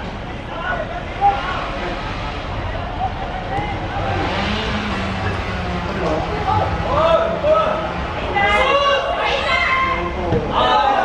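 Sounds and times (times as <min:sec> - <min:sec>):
passing vehicle engine hum: 0:00.0 - 0:10.6.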